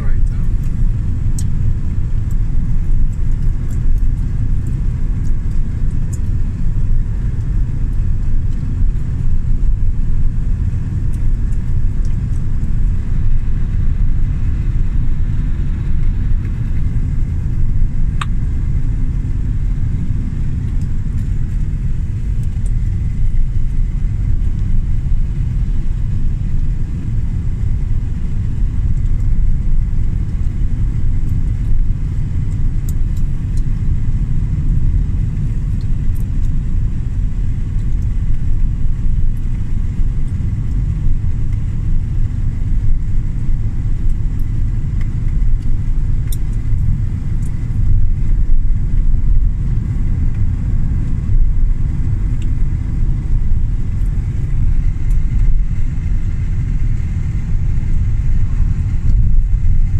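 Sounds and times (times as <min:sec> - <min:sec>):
faint high whine: 0:00.0 - 0:04.8
car engine and road noise: 0:00.0 - 0:59.9.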